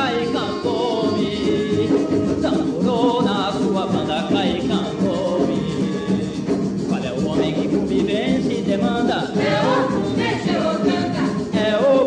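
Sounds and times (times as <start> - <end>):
chorus singing with accompaniment: 8.8 - 12.0.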